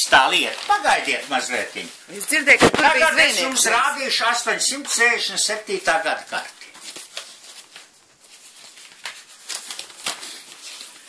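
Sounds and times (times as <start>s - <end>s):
paper map rustling and crackling: 0.0s - 2.0s, 6.4s - 11.0s.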